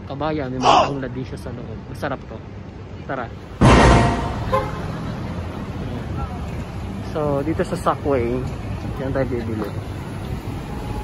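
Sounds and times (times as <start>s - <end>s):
low rumble of traffic: 0.0s - 11.0s
car horn toot: 3.8s - 4.8s.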